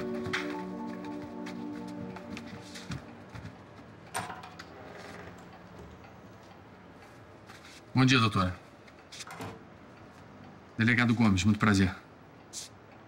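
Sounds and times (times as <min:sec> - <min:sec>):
held chords music: 0:00.0 - 0:03.4.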